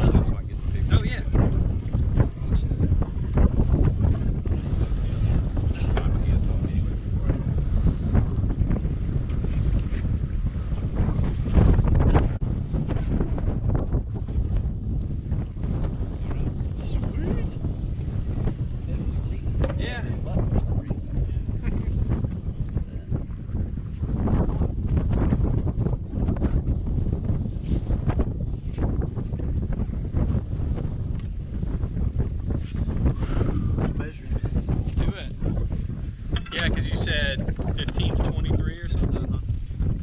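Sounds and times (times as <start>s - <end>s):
wind buffeting microphone: 0.0s - 40.0s.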